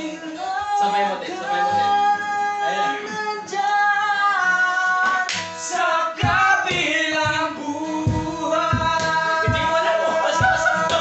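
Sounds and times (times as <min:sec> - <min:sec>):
man singing in high voice: 0:00.0 - 0:11.0.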